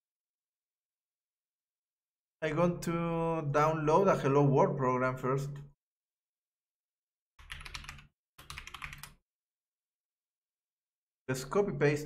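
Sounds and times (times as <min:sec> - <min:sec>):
typing on computer keyboard: 0:07.4 - 0:09.2.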